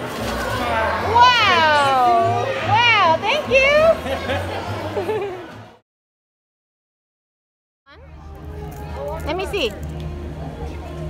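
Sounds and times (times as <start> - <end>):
background music: 0.0 - 5.8, 7.9 - 11.0.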